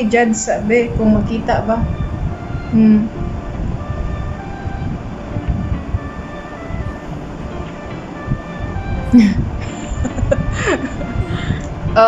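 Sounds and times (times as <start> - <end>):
road traffic rumble: 0.0 - 12.0
soft music: 0.0 - 12.0.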